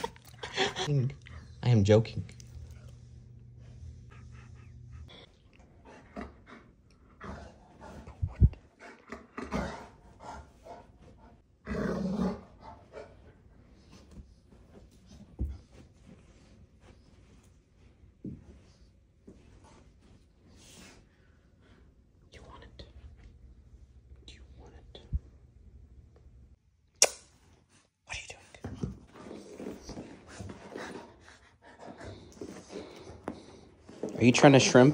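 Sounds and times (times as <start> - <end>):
dog rustling on rug: 13.7 - 21.3
sharp click: 27.0 - 27.3.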